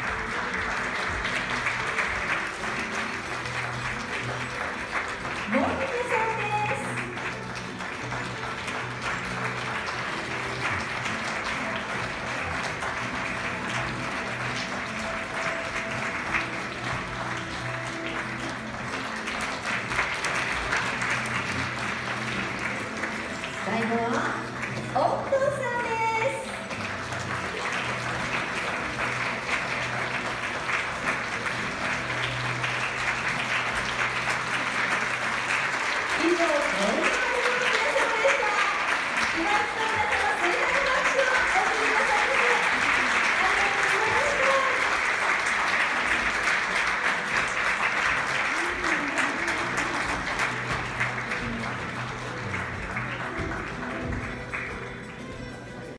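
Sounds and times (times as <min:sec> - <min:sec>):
audience applause: 0:00.0 - 0:55.9
music: 0:00.0 - 0:55.9.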